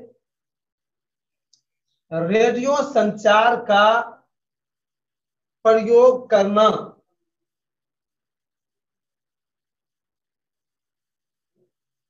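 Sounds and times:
man speaking: 2.1 - 4.3, 5.7 - 7.1.

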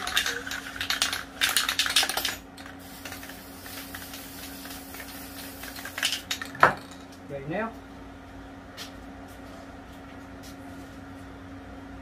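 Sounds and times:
spray can ball rattling: 0.0 - 7.0.

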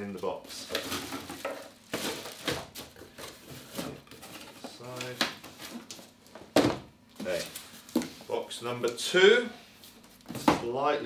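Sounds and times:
cellophane and cardboard rustling: 0.1 - 6.4.

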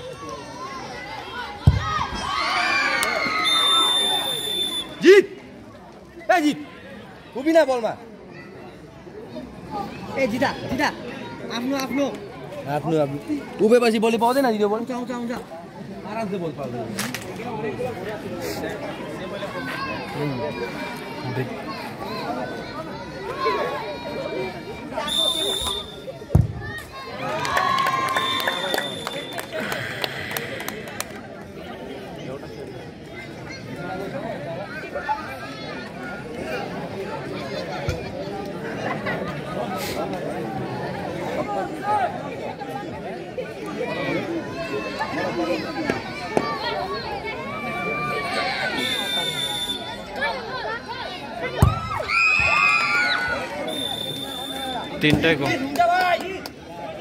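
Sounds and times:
crowd shouting: 0.0 - 5.4, 43.7 - 56.2
spectators shouting and cheering: 0.0 - 5.7, 19.1 - 31.7, 39.6 - 57.0
ball kick thud: 1.6 - 1.9, 26.3 - 26.6
whistle blast: 3.3 - 5.0, 25.0 - 26.1, 28.1 - 29.5, 48.7 - 50.0, 53.6 - 55.0.

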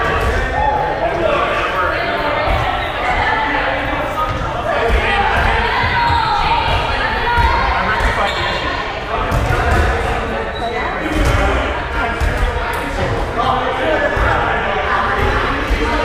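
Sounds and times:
players chattering: 0.0 - 16.0.

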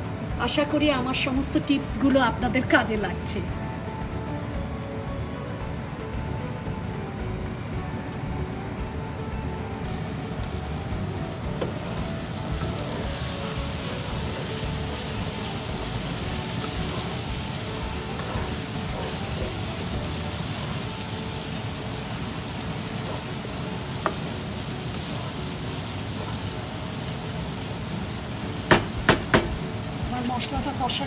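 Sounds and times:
curry sizzling in a pan: 9.8 - 31.0.

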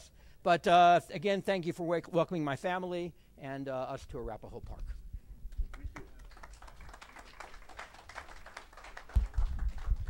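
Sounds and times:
audience clapping: 5.5 - 10.0.

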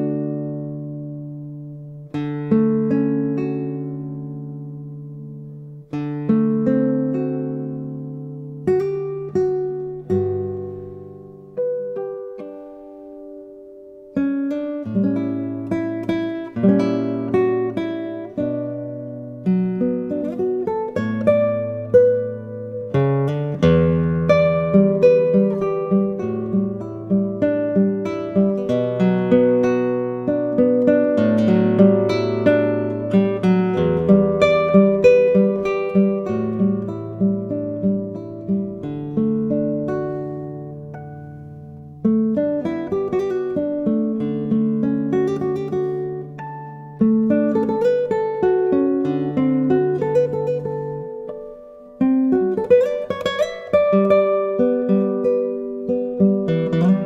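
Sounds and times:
classical guitar fingerstyle: 0.0 - 57.0.

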